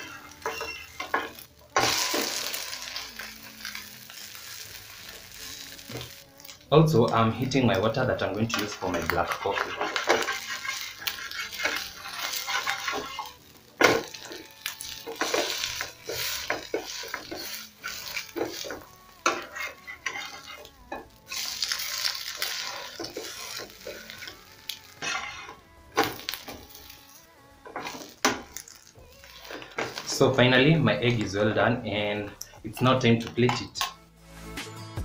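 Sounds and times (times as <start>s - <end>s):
metal spatula scraping a frying pan: 0.0s - 6.6s, 8.2s - 30.4s
egg sizzling in oil: 0.0s - 30.5s.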